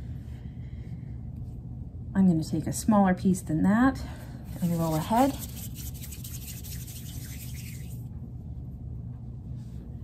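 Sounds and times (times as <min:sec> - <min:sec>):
low room hum: 0:00.0 - 0:10.0
hands rubbing clay: 0:04.5 - 0:08.0.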